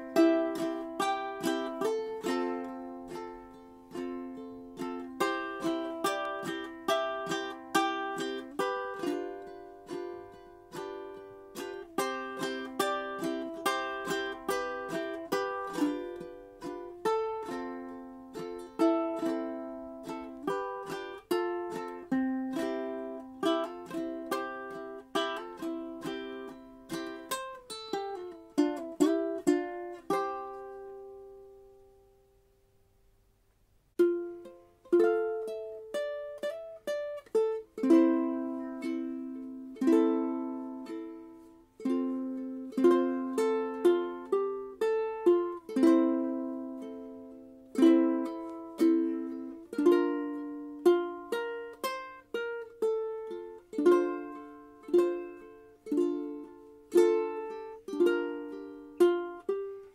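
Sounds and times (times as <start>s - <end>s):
ukulele playing: 0.0s - 32.8s, 33.9s - 59.9s.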